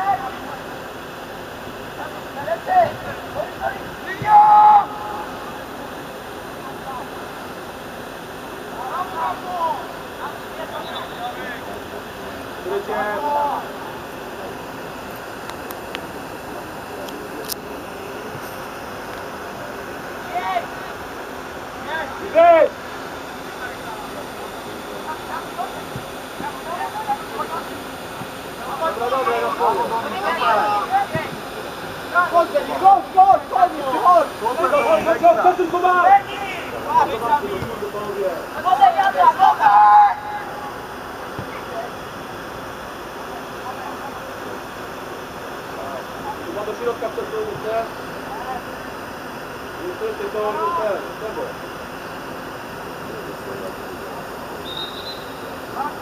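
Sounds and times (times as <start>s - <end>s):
steady background rush: 0.0s - 54.6s
players and coaches shouting: 2.1s - 5.9s, 8.7s - 11.7s, 12.6s - 13.9s, 21.8s - 22.8s, 25.1s - 41.4s.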